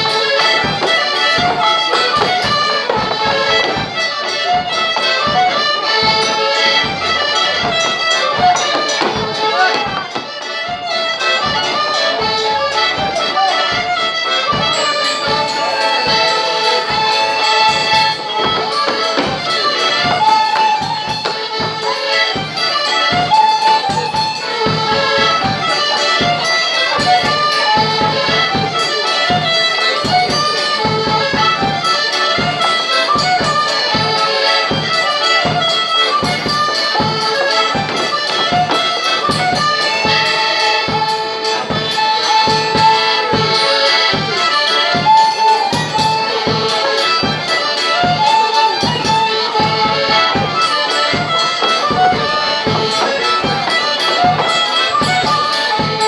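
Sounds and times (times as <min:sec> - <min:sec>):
fiddle: 0:00.0 - 0:56.0
piano accordion: 0:00.0 - 0:56.0.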